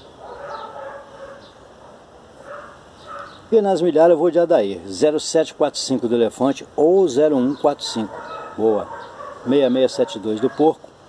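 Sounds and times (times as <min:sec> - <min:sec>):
distant animal call: 0:07.4 - 0:10.7.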